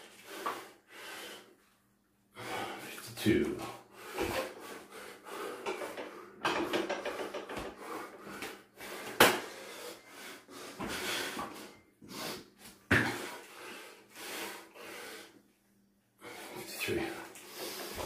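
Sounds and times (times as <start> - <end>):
man breathing hard: 0.0 - 1.7, 2.3 - 3.0, 3.7 - 15.5, 16.2 - 18.0.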